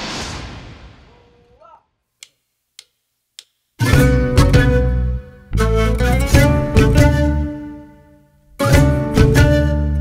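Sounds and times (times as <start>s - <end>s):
swoosh: 0.0s - 1.6s
drumstick clicks: 2.2s - 3.6s.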